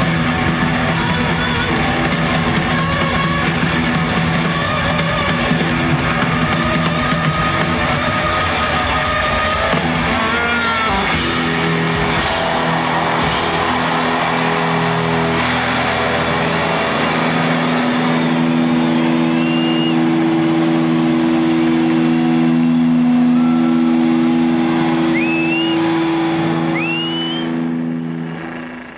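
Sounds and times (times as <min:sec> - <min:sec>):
crowd whistling: 0:00.0 - 0:28.9
rock band holding low chord: 0:00.0 - 0:28.9
stadium crowd cheering: 0:00.0 - 0:28.9.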